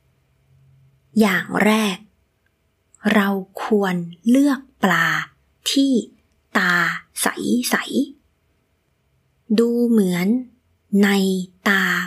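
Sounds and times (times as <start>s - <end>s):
woman speaking: 1.1s - 2.1s, 3.0s - 8.2s, 9.5s - 12.0s.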